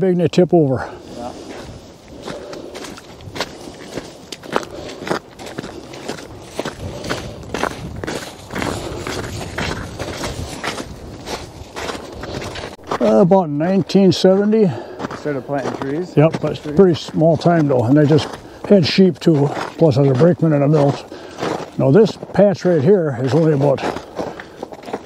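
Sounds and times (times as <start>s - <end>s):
footsteps crunching on snow: 0.7s - 25.0s.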